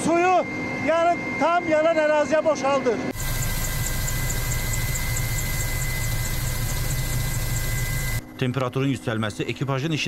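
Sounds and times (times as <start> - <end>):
helicopter engine and rotor drone: 0.0 - 10.0
faint high ticking: 3.2 - 8.2.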